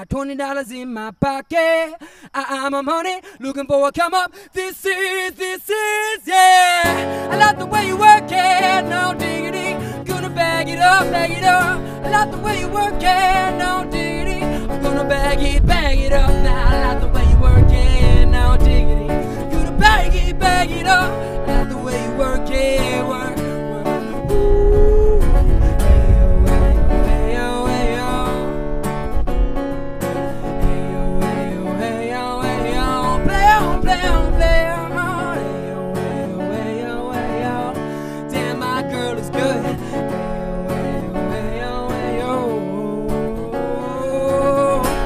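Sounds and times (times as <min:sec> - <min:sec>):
man's wordless vocal runs: 0:00.0 - 0:28.7
acoustic guitar strumming: 0:00.0 - 0:45.0.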